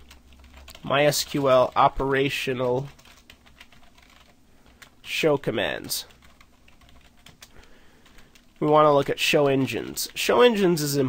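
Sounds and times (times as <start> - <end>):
keyboard typing: 0.0 - 10.3.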